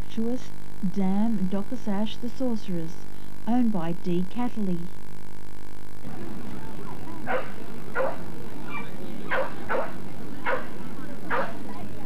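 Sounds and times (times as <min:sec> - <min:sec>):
dog barking: 0:07.3 - 0:11.6.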